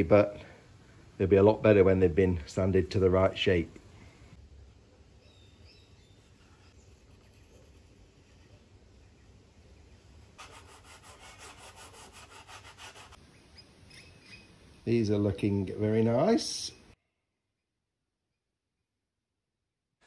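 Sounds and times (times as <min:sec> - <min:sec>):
faint chirp: 0:04.9 - 0:07.3, 0:13.3 - 0:14.9.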